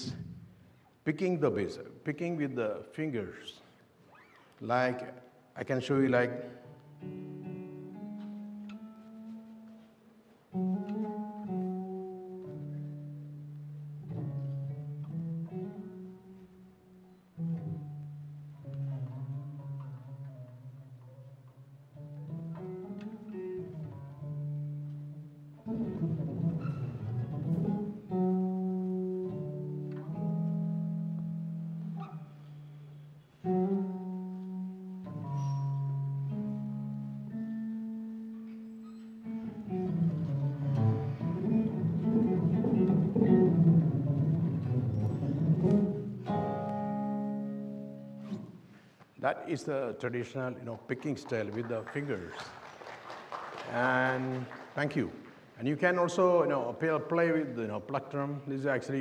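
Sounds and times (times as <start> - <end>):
fingerstyle electric bass guitar: 6.7 - 48.8.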